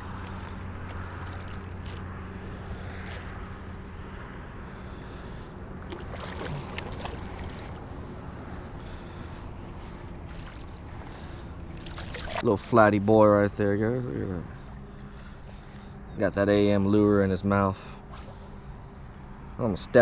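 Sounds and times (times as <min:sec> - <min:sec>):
water sloshing and trickling: 0:00.0 - 0:03.9, 0:05.2 - 0:13.2
low hum: 0:00.0 - 0:19.9.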